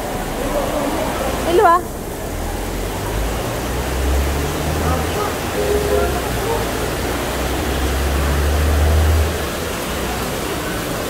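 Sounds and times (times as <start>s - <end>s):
heavy rain pouring: 0.0s - 11.0s.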